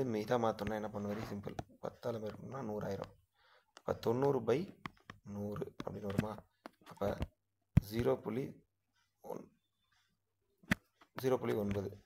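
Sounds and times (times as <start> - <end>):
person speaking: 0.0 - 8.6, 11.1 - 12.0.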